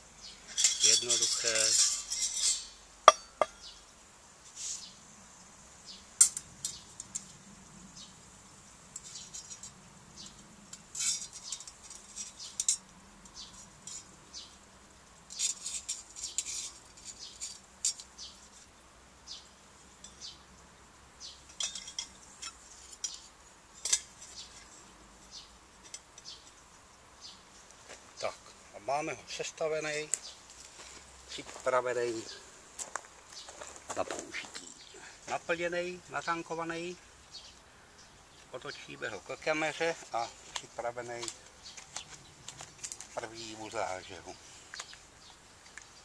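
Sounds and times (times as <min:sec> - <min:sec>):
metal parts clinking: 0:00.5 - 0:03.6, 0:10.9 - 0:12.8, 0:21.5 - 0:23.2.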